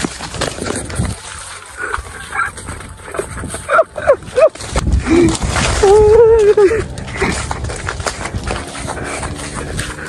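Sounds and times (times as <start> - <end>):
rustling and handling noise: 0.0 - 10.0.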